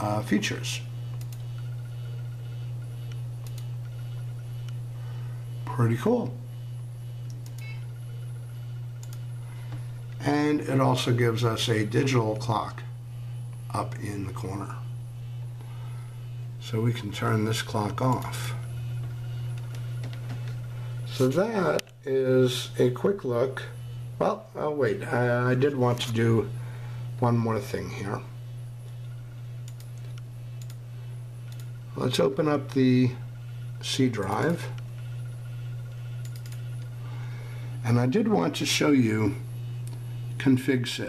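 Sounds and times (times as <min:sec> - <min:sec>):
steady low hum: 0:00.0 - 0:41.0
computer mouse clicks: 0:01.1 - 0:01.7, 0:03.0 - 0:04.8, 0:07.2 - 0:07.8, 0:09.0 - 0:09.3, 0:18.0 - 0:18.4, 0:19.0 - 0:20.6, 0:29.6 - 0:30.8, 0:31.5 - 0:31.7, 0:36.2 - 0:36.9.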